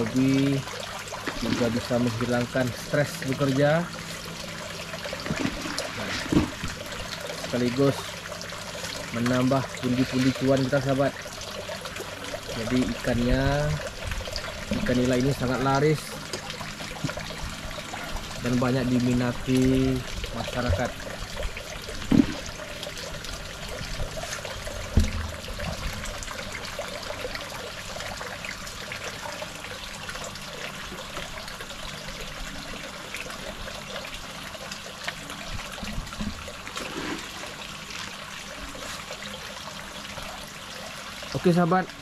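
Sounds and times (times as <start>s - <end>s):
water trickling from pipes: 0.0s - 42.0s.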